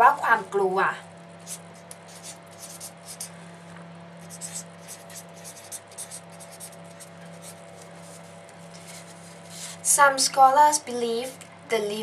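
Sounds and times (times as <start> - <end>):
steady low hum: 0.0 - 12.0
pen scratching on paper: 1.4 - 3.3, 4.2 - 7.6.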